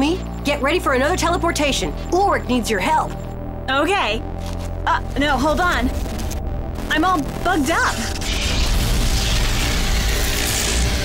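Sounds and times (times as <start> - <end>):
soundtrack music: 0.0 - 11.0
glitching whoosh with deep rumble: 5.1 - 11.0.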